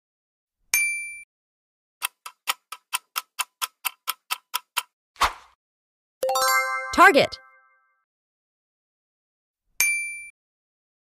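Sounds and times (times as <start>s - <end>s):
clock ticking: 2.0s - 4.9s.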